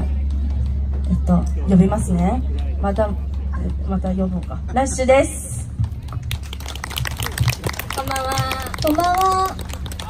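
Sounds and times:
audience clapping: 5.8 - 10.0.

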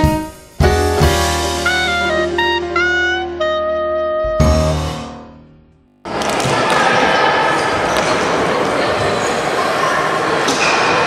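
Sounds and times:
children's voices echoing: 6.1 - 11.0.

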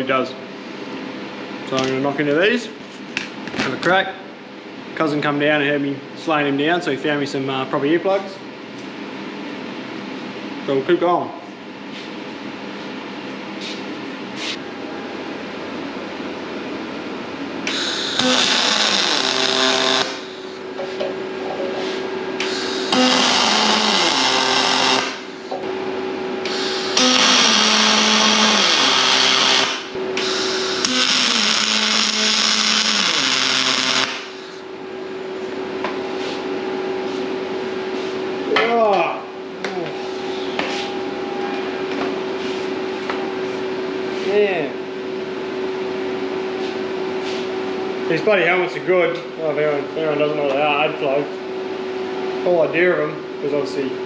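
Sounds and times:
steady hum: 0.0 - 54.0
welding arc crackling: 17.7 - 20.6, 22.4 - 25.6, 26.5 - 34.6.

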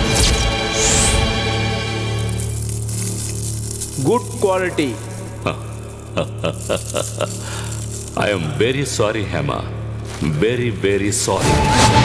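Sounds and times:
low music drone: 0.0 - 12.0
person speaking: 3.8 - 11.4.

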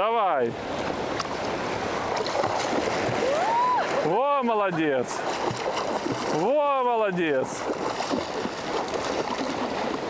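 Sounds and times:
sea water lapping: 0.5 - 10.0
child swimming splashes: 0.9 - 4.2, 4.8 - 6.6, 7.2 - 10.0.

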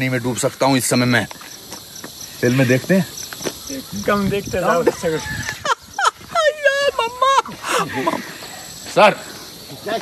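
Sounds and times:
insect chirping: 0.0 - 10.0.

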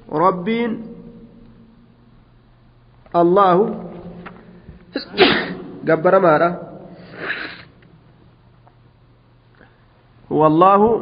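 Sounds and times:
man speaking: 0.0 - 1.3, 3.1 - 4.2, 4.9 - 7.0
faint low hum: 0.0 - 11.0.

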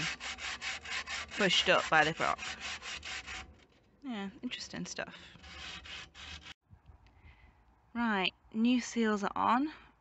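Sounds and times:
rubbing scraping noise: 0.0 - 3.8, 5.2 - 6.6.

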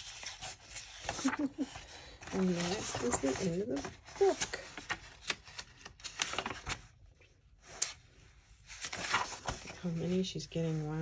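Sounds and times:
book pages turning: 0.0 - 11.0.

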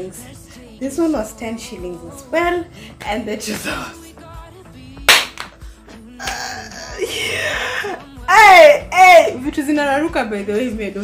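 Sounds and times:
quiet background music: 0.0 - 11.0
sharp hand clap: 5.0 - 6.4.

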